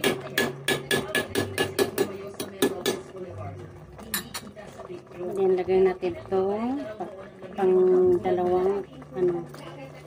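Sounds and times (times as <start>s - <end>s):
metal spoon clinking on pot: 4.0s - 4.5s.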